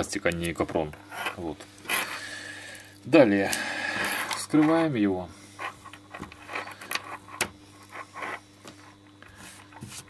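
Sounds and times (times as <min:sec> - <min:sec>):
braided cable rustling and scraping: 0:00.5 - 0:03.0, 0:03.6 - 0:10.0.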